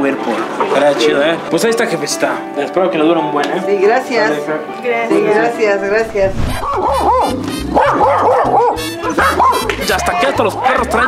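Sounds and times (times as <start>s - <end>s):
background music with bass line: 5.2s - 11.0s
dog barking: 6.5s - 9.7s.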